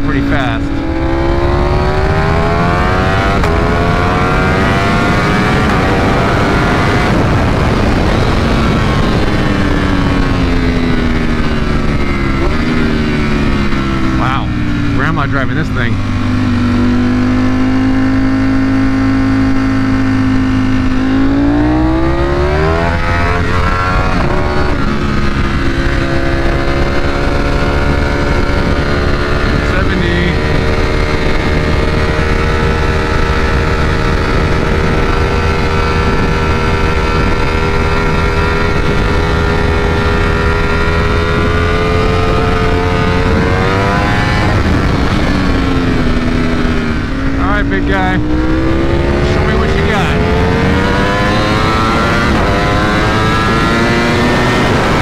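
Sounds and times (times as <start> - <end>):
motorcycle engine at speed: 0.0 - 55.0
wind rush: 0.0 - 55.0.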